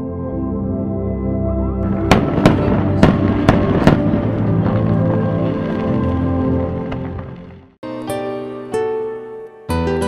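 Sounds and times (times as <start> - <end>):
ambient music: 0.0 - 10.0
firecracker bangs: 1.9 - 7.5.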